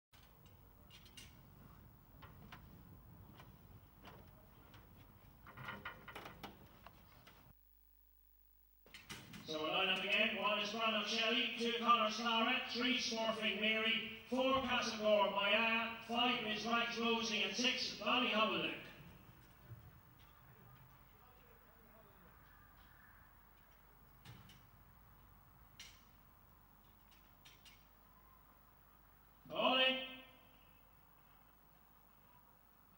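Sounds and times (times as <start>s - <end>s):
man talking: 9.4s - 19.0s, 29.5s - 30.4s.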